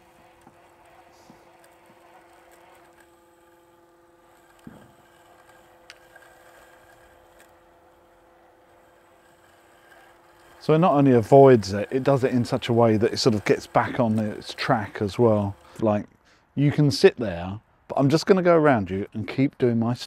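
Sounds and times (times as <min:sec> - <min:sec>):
robotic lawn mower humming: 0:00.0 - 0:16.0.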